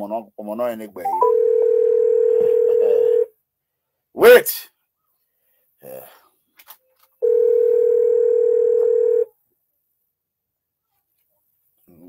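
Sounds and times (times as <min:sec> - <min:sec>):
phone ringing tone beep: 0:01.1 - 0:03.3, 0:07.2 - 0:09.3.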